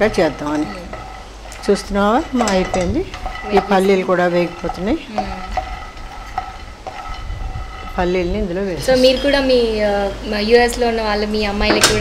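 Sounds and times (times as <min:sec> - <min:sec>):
spatula scraping frying pan: 0:00.0 - 0:09.8.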